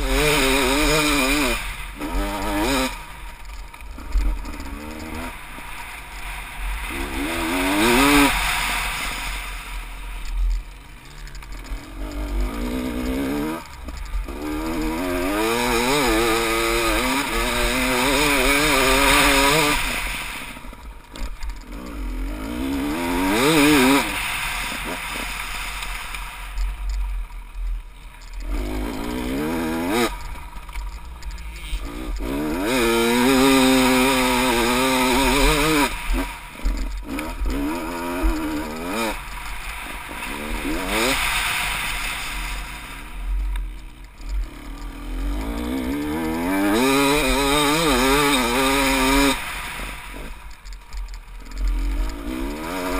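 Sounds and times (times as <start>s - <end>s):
dirt bike engine revving: 0.0s - 52.9s.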